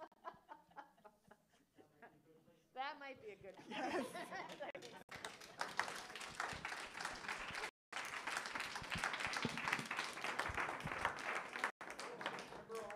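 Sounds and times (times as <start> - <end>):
audience applauding: 4.4 - 12.9.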